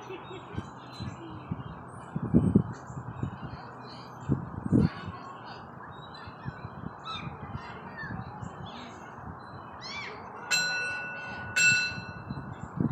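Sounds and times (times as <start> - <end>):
small birds chirping: 0.0 - 10.4.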